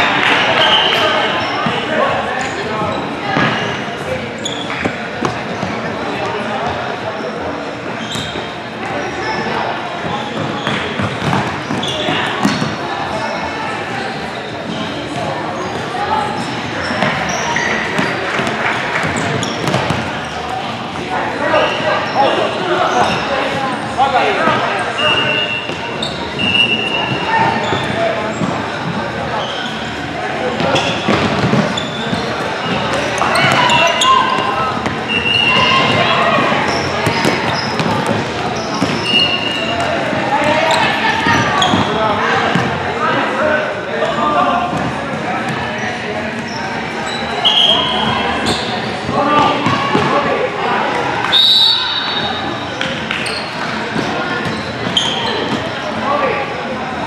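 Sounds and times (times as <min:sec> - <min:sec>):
voices calling out: 0:00.0 - 0:57.0
sneaker squeaks: 0:00.3 - 0:42.8, 0:44.0 - 0:50.3, 0:51.2 - 0:56.6.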